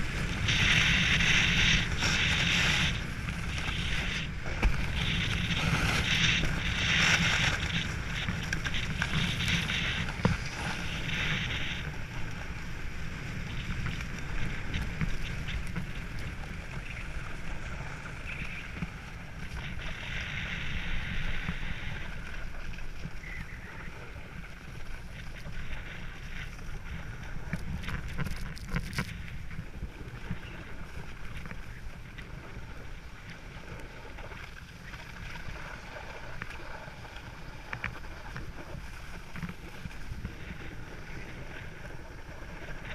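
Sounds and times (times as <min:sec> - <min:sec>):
snowboard scraping on snow: 0:00.0 - 0:42.9
wind rumble on microphone: 0:00.0 - 0:42.9.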